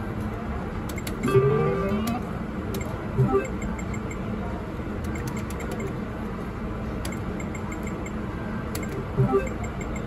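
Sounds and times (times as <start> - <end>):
casino background noise: 0.0 - 10.0
electronic win tune: 9.2 - 9.8.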